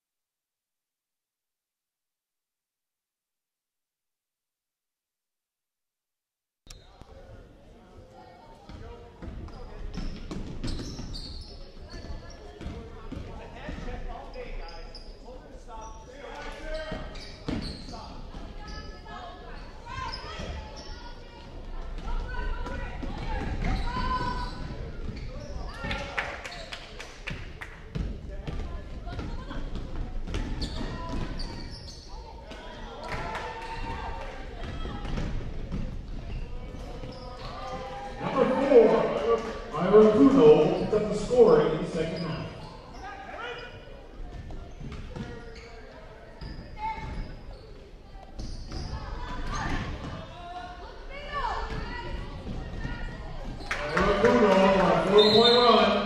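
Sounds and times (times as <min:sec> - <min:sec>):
voices of players and spectators: 0:06.7 - 0:56.0.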